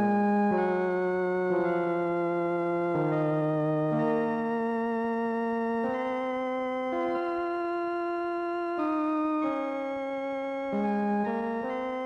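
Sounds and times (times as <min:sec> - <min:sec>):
slow organ chords: 0:00.0 - 0:12.0.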